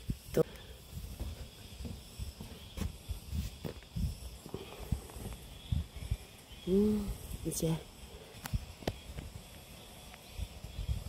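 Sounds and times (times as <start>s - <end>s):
footsteps on a mountain path: 0.6s - 5.7s.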